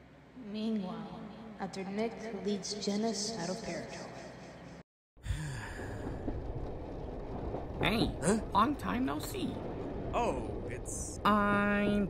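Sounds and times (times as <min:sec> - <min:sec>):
voiced sigh: 0:05.2 - 0:06.3.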